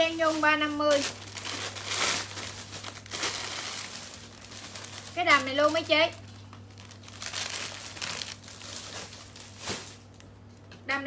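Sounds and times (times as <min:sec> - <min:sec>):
plastic bags crinkling: 0:00.0 - 0:10.6
low steady hum: 0:00.0 - 0:11.0.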